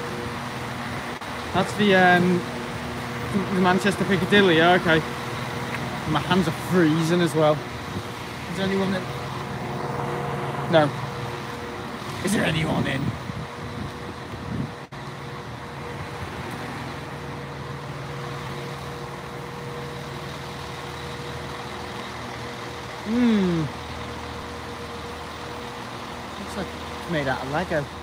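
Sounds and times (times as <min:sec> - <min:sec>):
diesel train engine idling: 0:00.0 - 0:28.0.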